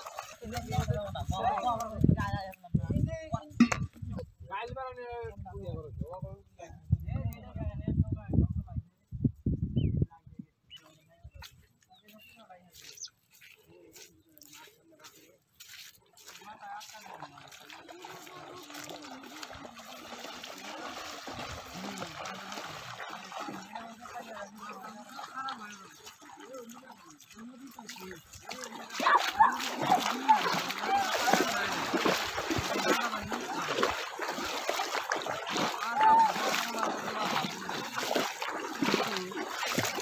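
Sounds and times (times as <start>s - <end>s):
feet splashing in water: 0.0s - 2.7s, 10.8s - 40.0s
people's voices: 10.0s - 40.0s
people calling out: 28.5s - 40.0s.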